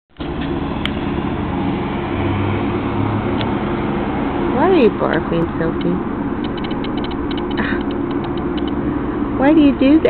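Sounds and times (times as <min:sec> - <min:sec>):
low mechanical hum: 0:00.2 - 0:10.0.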